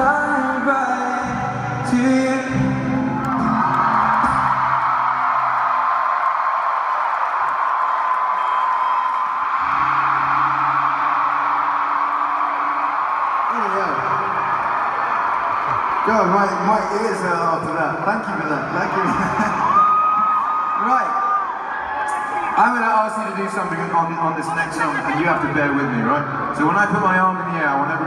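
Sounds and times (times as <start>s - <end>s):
arena crowd cheering and screaming: 0.0s - 28.0s.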